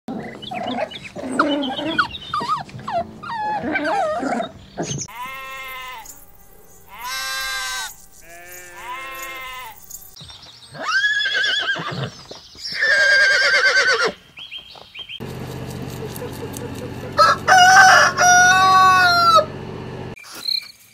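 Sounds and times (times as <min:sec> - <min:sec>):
puppies whining and yelping: 0:00.2 - 0:10.2
sheep bleating: 0:05.1 - 0:10.2
horse whinnying: 0:10.8 - 0:14.2.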